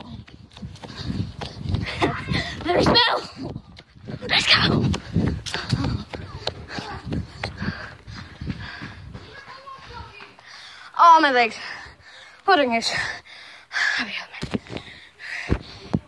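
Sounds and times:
quick footsteps: 0.0s - 12.4s, 14.3s - 16.0s.

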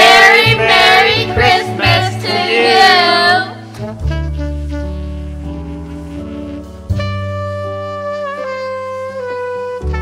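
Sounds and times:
children and woman singing: 0.0s - 3.6s
instrumental backing music: 0.0s - 10.0s.

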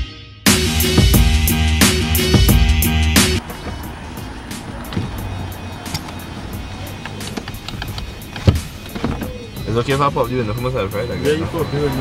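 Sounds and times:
music playing in car: 0.0s - 12.0s
car running hum: 1.0s - 12.0s.

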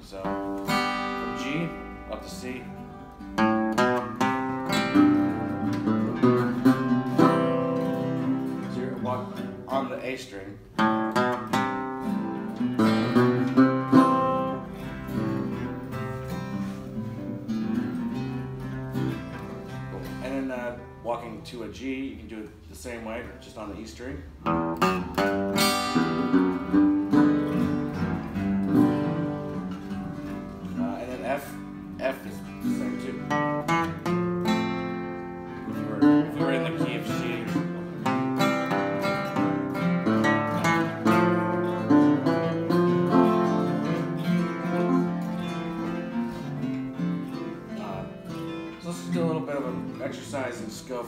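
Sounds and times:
acoustic guitar picking and strumming: 0.0s - 51.0s.

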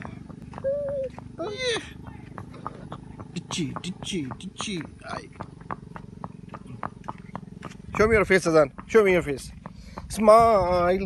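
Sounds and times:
horse hooves clopping on concrete: 0.0s - 11.0s.

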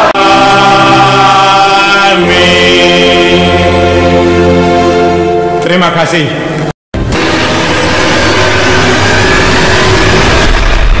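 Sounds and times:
loud dense rushing noise: 7.0s - 11.0s.

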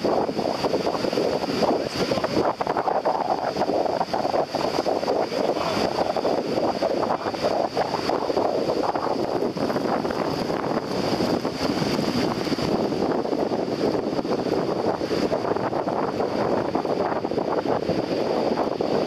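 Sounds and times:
shallow surf washing: 0.0s - 19.0s
wind buffeting microphone: 0.0s - 19.0s.

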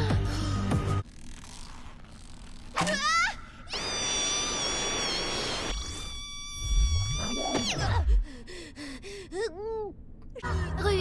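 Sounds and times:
music: 0.0s - 1.0s
high ringing tone: 3.7s - 7.2s
short squeaky chirps: 5.7s - 7.8s.

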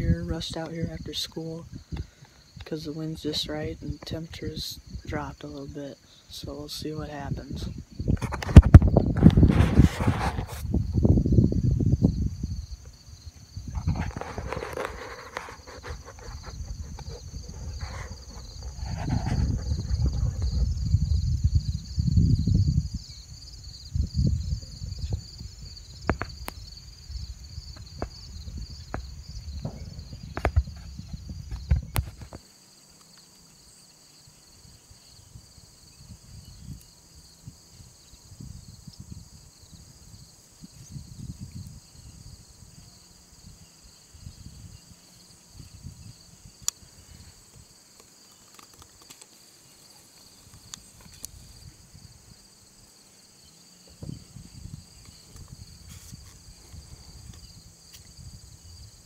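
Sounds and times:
wind on microphone: 0.0s - 32.4s, 34.7s - 47.7s, 50.4s - 53.0s, 53.8s - 59.0s
insects chorus: 0.0s - 59.0s
faint rustling: 13.7s - 20.8s.

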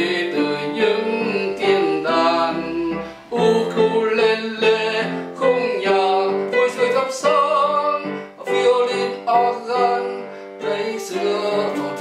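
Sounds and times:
electronic keyboard melody: 0.0s - 12.0s.

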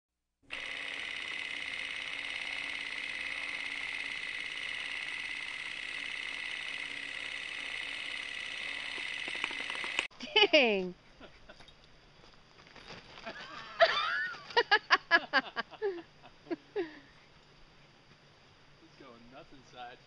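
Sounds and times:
film projector whirring and clattering: 0.5s - 10.1s
projector clicks: 0.5s - 10.1s.

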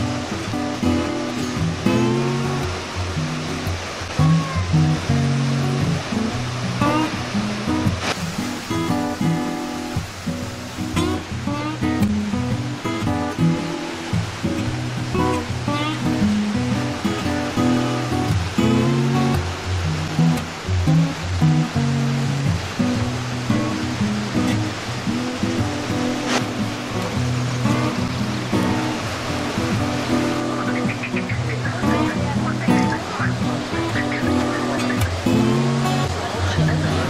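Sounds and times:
plucked guitar music: 0.0s - 37.0s.

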